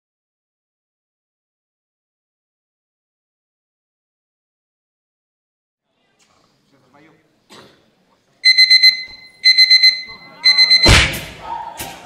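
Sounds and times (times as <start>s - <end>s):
alarm clock beeping: 8.4s - 11.1s.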